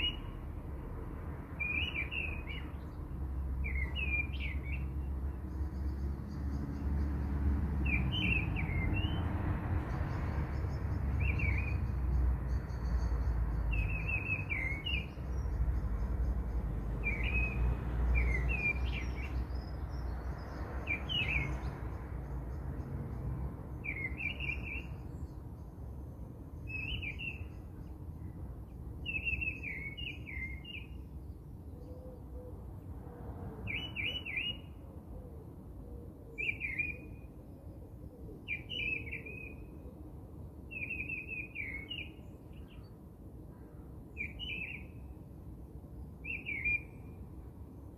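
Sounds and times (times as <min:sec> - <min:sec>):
small birds chirping: 0:00.0 - 0:00.4, 0:01.6 - 0:32.0, 0:36.4 - 0:37.1.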